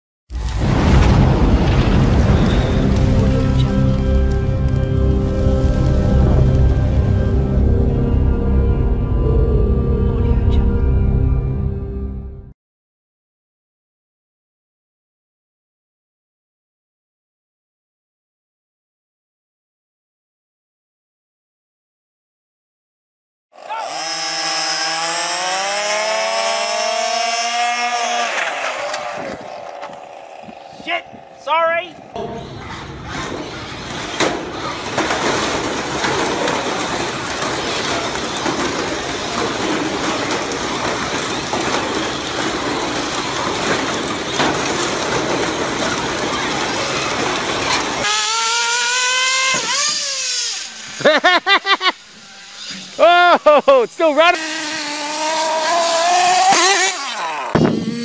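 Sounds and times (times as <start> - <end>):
rc car motors whining: 23.6 - 53.2, 54.1 - 58.0
din of small cars: 23.6 - 58.0
voices: 29.2 - 32.9.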